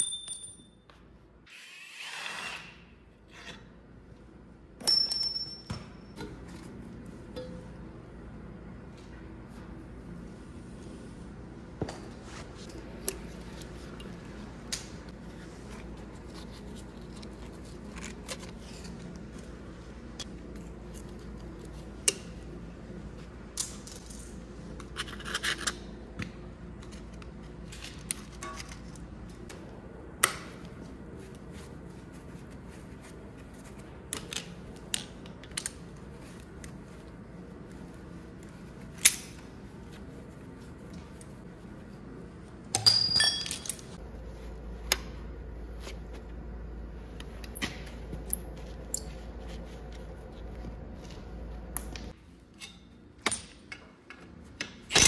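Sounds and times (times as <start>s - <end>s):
steady low hum: 2.7s - 55.0s
wrenches clicking and clinking: 42.7s - 44.0s.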